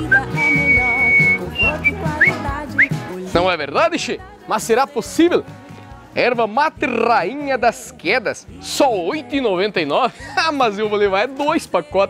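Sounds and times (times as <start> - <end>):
person whistling: 0.0 - 3.1
background music: 0.0 - 12.0.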